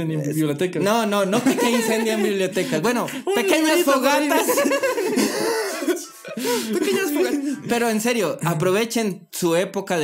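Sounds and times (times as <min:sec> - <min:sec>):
men laughing hoarsely: 0:00.9 - 0:07.7.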